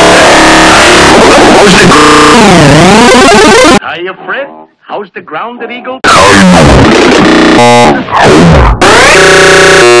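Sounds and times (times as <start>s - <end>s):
stuttering synthetic buzz: 0.0s - 3.8s, 6.1s - 10.0s
warped pitch-bending cartoon voice: 0.0s - 3.8s, 7.6s - 10.0s.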